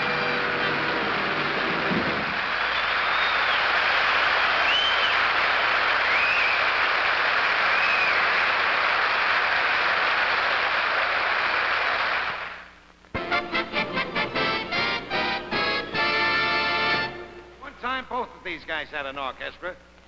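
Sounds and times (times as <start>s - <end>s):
studio audience applauding: 0.2s - 12.7s
short high whistles: 4.6s - 5.2s, 6.0s - 6.6s.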